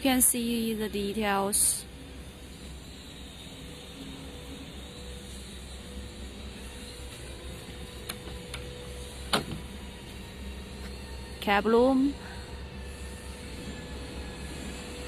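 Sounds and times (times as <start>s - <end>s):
low hum: 0.0s - 15.0s.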